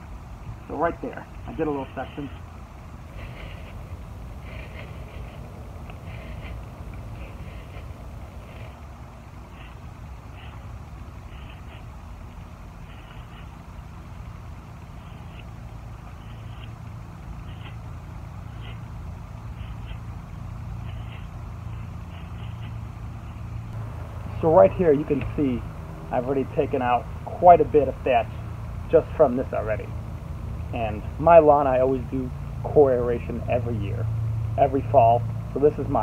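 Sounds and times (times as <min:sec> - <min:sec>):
low vehicle rumble: 0:00.0 - 0:36.0
rake scratching lawn: 0:00.7 - 0:23.8.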